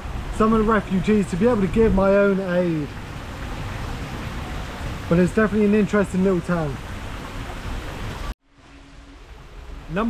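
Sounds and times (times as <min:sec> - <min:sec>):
low rumble with hiss: 0:00.0 - 0:10.0.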